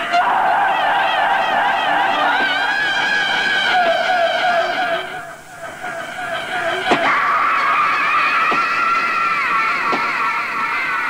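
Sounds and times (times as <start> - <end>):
steady synthesizer tone: 0.0 - 9.5.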